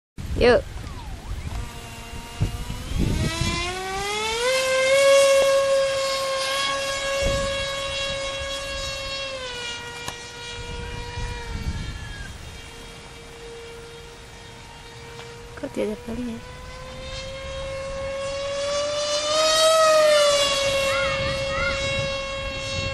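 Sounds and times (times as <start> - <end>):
model jet electric motor whine: 0.2 - 22.9.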